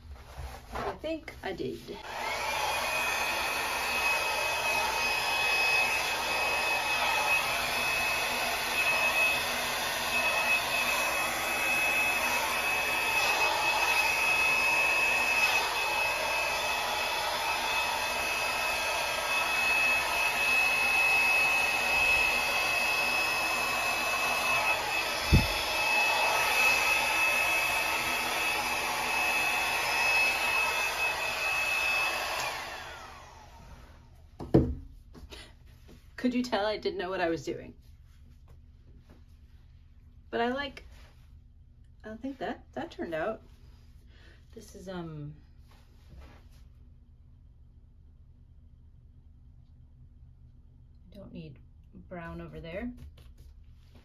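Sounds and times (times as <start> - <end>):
hair dryer running: 1.9 - 35.3
thump: 34.4 - 34.9.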